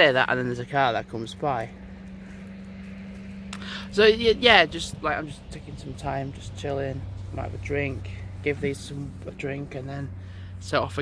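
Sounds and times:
car passing by: 0.0 - 11.0.

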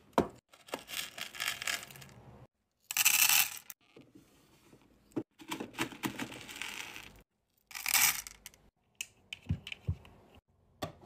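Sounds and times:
wax beads clattering: 6.5 - 8.5.

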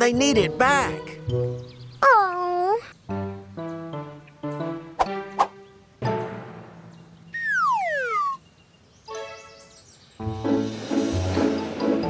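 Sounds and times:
background music: 0.0 - 8.4, 9.0 - 12.0
cartoon falling whistle: 7.4 - 8.4
short wavering tone: 7.4 - 8.4.

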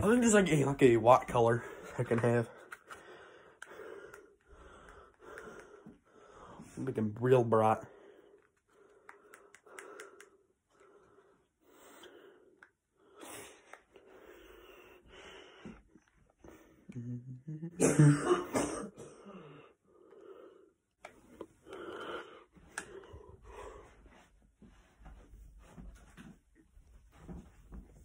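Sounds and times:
faint breathing: 1.5 - 6.8, 7.8 - 17.2, 19.2 - 25.3
sharp clicks: 9.0 - 10.4.

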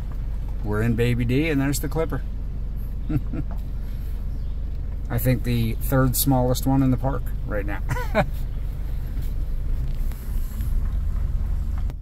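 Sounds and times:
pickup truck engine rumble: 0.0 - 12.0.

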